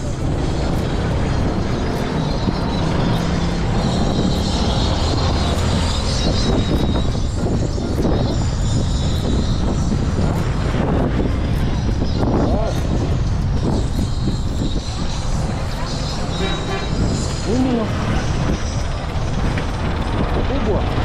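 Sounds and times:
vehicle engine and road noise: 0.0s - 21.0s.

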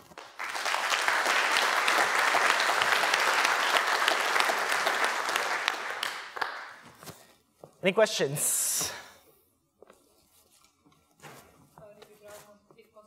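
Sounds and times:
audience applauding: 0.0s - 6.8s.

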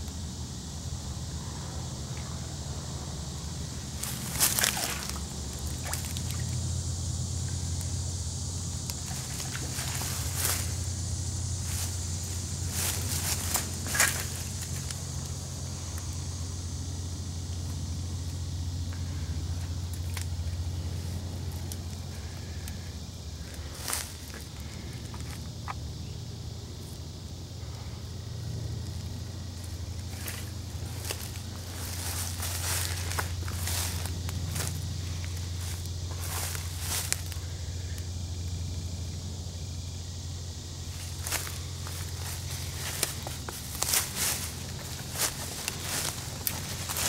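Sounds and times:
running water hiss: 3.3s - 38.0s
twigs cracking: 4.0s - 6.5s, 29.6s - 37.4s, 41.1s - 47.0s
footsteps through leaf litter: 11.6s - 14.8s, 30.1s - 37.4s, 41.0s - 47.0s.

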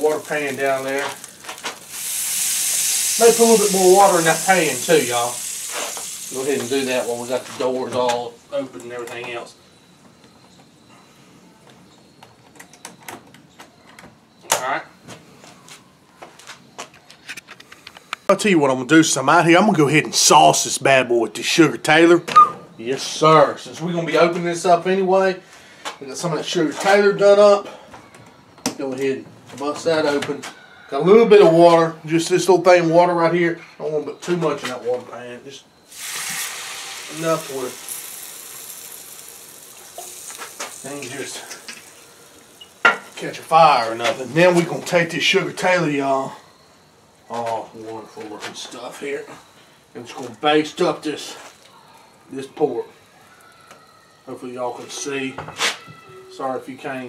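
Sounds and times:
water trickling into a pan: 0.0s - 7.8s, 35.9s - 45.0s.

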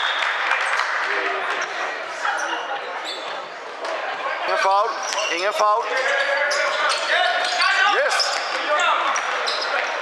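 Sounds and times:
echoing chatter of voices: 0.0s - 10.0s.

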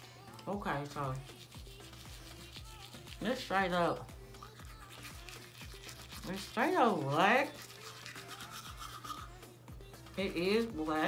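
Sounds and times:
toothbrush scrubbing teeth: 0.0s - 11.0s.

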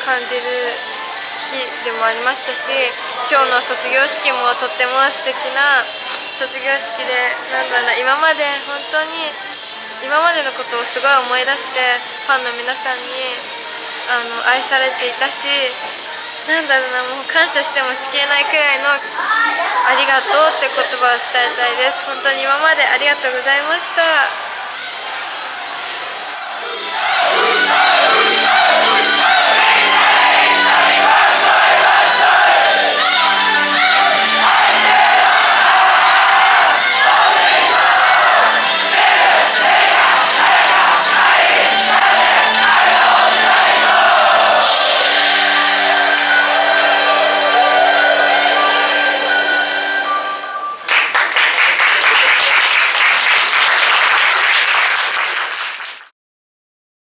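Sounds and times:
women singing: 0.0s - 13.5s, 19.9s - 24.3s, 27.4s - 50.2s
audience chanting: 0.0s - 50.5s
crowd cheering and applauding: 17.2s - 56.1s.

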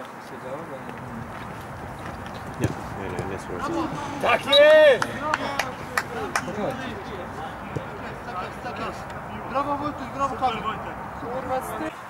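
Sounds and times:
man shouting: 3.6s - 6.7s
shouted calls: 3.6s - 11.9s.

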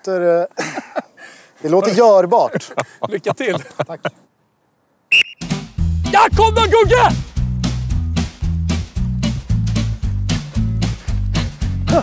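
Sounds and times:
referee's whistle blast: 5.1s - 5.6s
music with bass beat: 5.4s - 12.0s.

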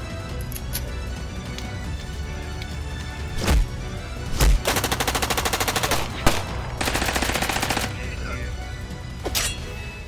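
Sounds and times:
submachine gun firing: 4.6s - 8.0s.

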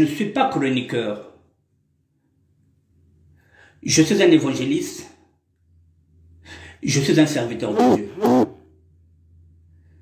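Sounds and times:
faint low room hum: 0.0s - 10.0s
man speaking: 6.8s - 8.4s.

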